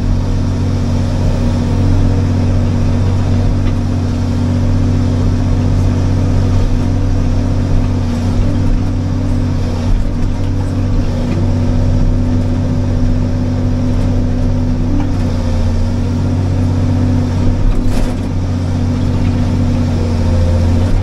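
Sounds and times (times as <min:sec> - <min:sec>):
excavator diesel engine droning: 0:00.0 - 0:21.0.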